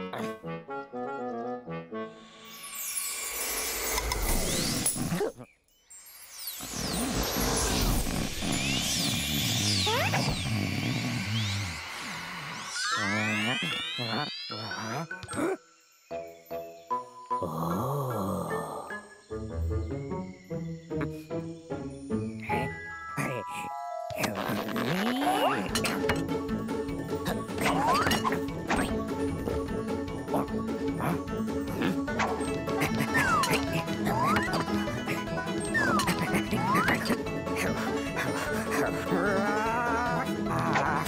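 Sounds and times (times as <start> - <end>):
light whimsical music: 0.0 - 10.9, 11.7 - 41.0
rising glide: 6.6 - 14.8
cartoon creature humming: 12.4 - 15.6, 22.4 - 26.2, 29.4 - 41.0.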